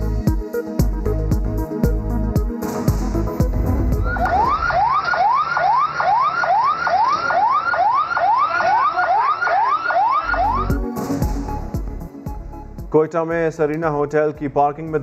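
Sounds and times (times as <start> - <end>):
news music bed: 0.0 - 15.0
emergency vehicle siren: 3.6 - 11.0.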